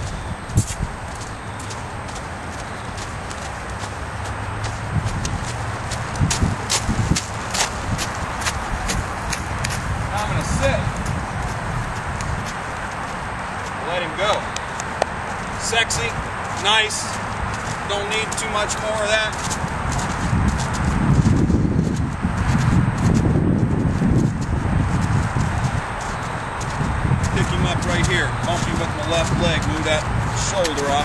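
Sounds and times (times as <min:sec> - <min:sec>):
horse hoofbeats trotting on dirt: 0:00.0 - 0:31.0
steady low rumble: 0:00.0 - 0:31.0.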